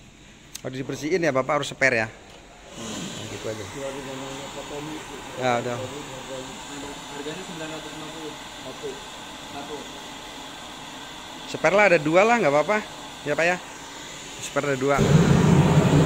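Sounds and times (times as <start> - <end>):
steady rushing hiss: 0.0 - 16.0
men talking indistinctly: 3.1 - 9.9.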